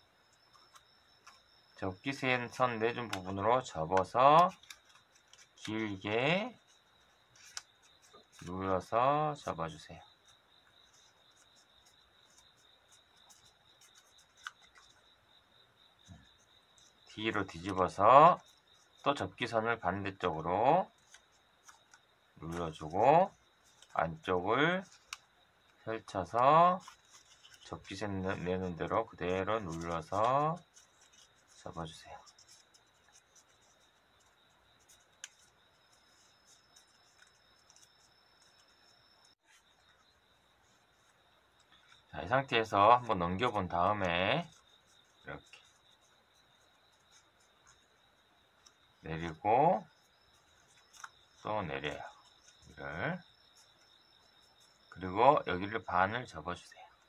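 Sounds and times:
paper crinkling and ticking: 0.1 - 57.0.

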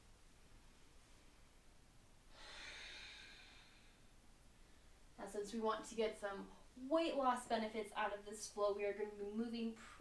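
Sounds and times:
woman exhaling through nose: 2.3 - 4.1.

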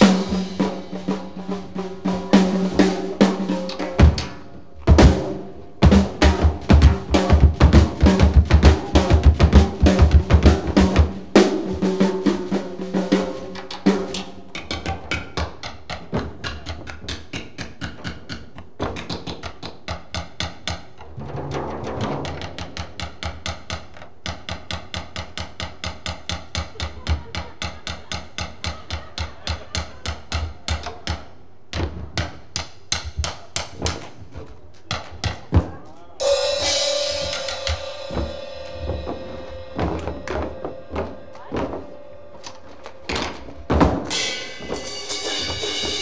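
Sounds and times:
drumstick knocking on floor and shoe: 5.8 - 11.2, 13.5 - 35.8, 37.2 - 46.0
ringing tone from drum kit: 36.2 - 46.0
low thuds: 37.2 - 46.0.

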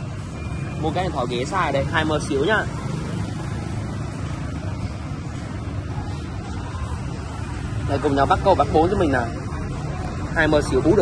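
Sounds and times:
motorbikes passing: 0.0 - 11.0.

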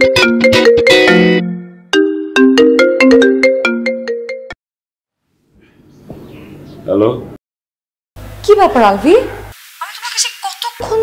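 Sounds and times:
phone ringtone melody: 0.0 - 4.6.

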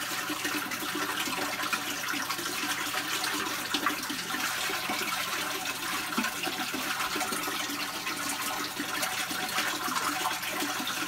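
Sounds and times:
running water: 0.0 - 11.0.

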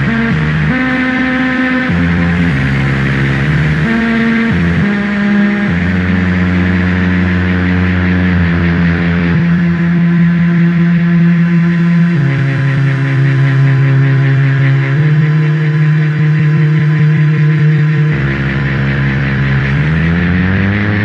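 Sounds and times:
low electronic drones: 0.0 - 21.0.

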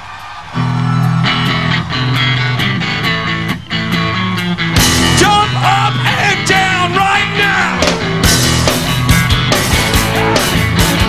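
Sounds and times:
drums: 0.0 - 11.0
bass guitar: 0.6 - 11.0
electric guitar strumming: 0.6 - 11.0.

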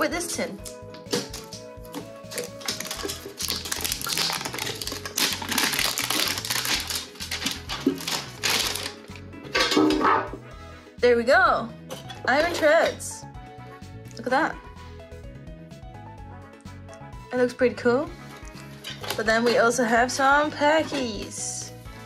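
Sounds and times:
clicks and rustling of metal tin: 2.3 - 10.3.

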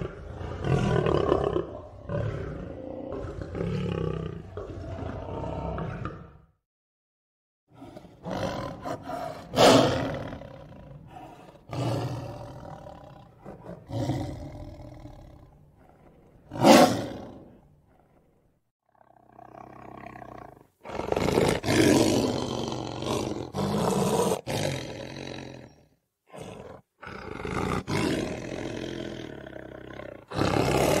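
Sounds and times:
lion roaring: 0.0 - 6.6, 7.7 - 31.0.

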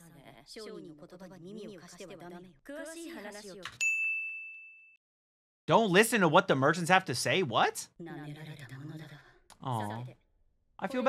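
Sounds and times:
bright high ding: 3.8 - 5.0.

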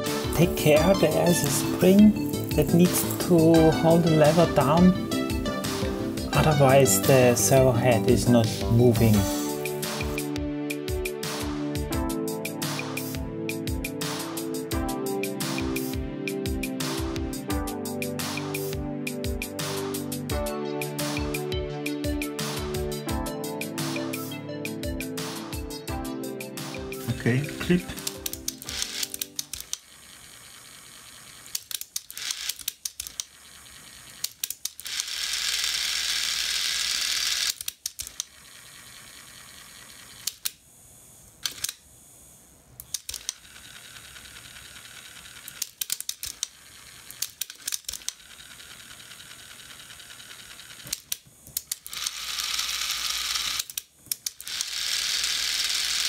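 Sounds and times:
motor whirring: 27.9 - 56.0.

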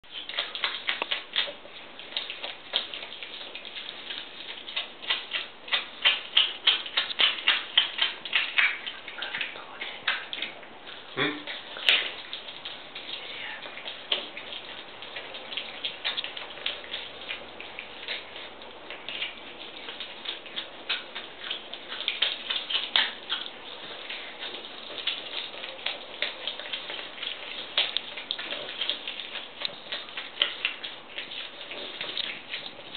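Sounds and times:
otter crunching fish: 0.0 - 32.9.

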